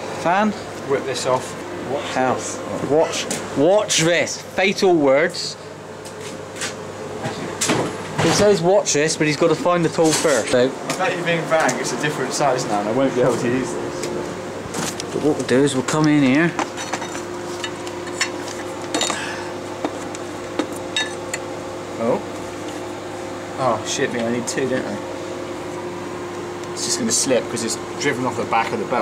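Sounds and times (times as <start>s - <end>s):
metal tools clinking on engine fan: 14.8s - 19.4s, 20.6s - 21.5s.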